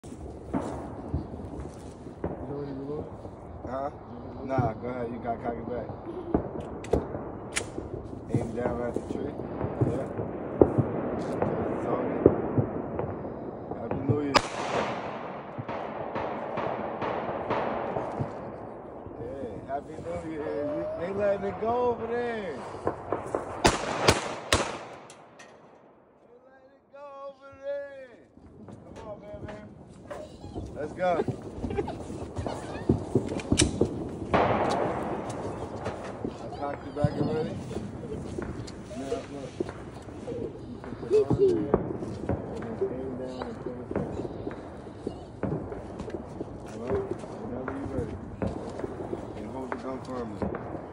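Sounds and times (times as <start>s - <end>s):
gunshot: 0.4s - 3.2s, 4.4s - 26.0s, 30.7s - 50.9s.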